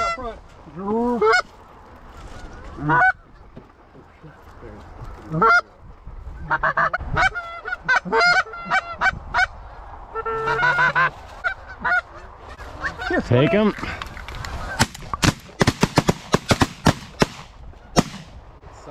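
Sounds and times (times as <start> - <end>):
goose honking: 2.2 - 3.3, 5.3 - 5.7, 6.4 - 9.5, 10.1 - 13.6
goose clucks: 5.2 - 5.7, 6.4 - 9.5, 10.1 - 13.2.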